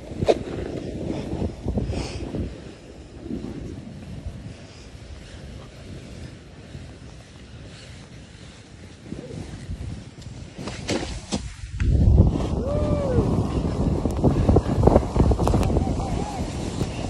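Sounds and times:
snowboard carving on snow: 0:00.0 - 0:17.0
wind buffeting microphone: 0:00.0 - 0:17.0.

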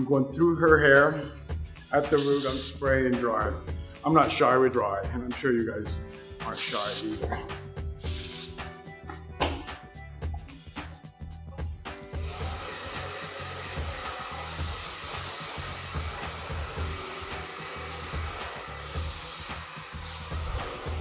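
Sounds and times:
aerosol spray hissing: 0:02.1 - 0:02.8, 0:06.4 - 0:07.2, 0:08.0 - 0:08.8, 0:12.2 - 0:21.0
hair dryer running: 0:12.1 - 0:21.0.

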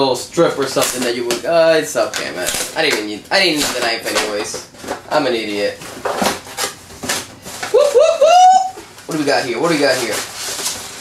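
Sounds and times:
package ripping and rustling: 0:00.6 - 0:08.0, 0:08.9 - 0:11.0.

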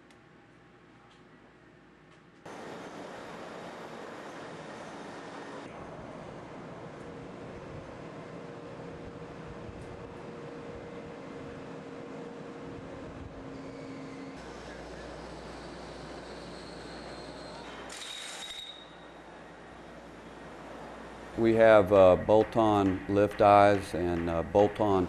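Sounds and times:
faint hum: 0:00.0 - 0:17.9, 0:18.6 - 0:25.0.

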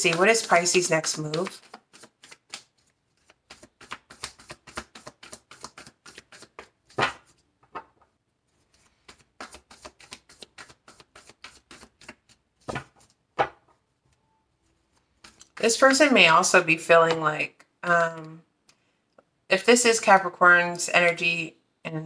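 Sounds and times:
cards being shuffled: 0:00.0 - 0:07.9, 0:08.5 - 0:15.8
card knocks: 0:12.7 - 0:13.7.

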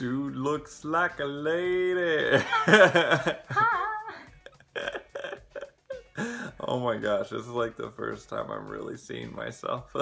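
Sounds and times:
person laughing: 0:02.3 - 0:06.6.

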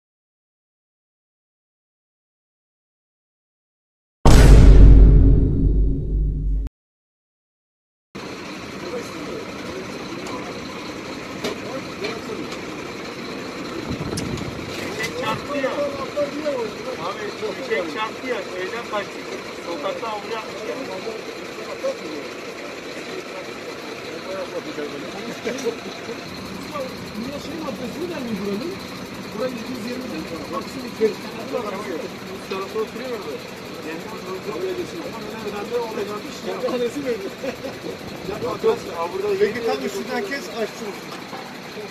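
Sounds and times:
vehicle engine idling: 0:08.2 - 0:41.9
indistinct voices talking: 0:18.0 - 0:41.9.

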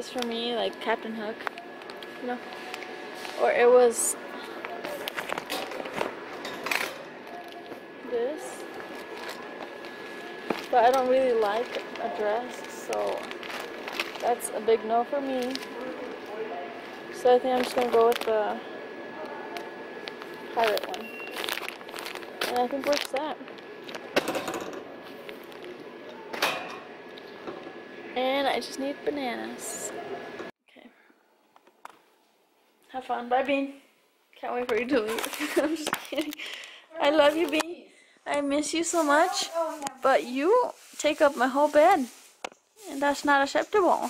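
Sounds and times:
steady background hum: 0:00.0 - 0:44.0
plastic packaging crinkling: 0:08.6 - 0:14.6, 0:15.2 - 0:16.4, 0:17.5 - 0:18.6, 0:19.5 - 0:24.2.

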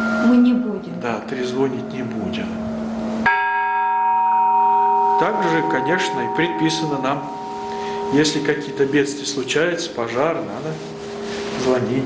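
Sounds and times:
church bell ringing: 0:00.0 - 0:00.7, 0:03.2 - 0:11.3.

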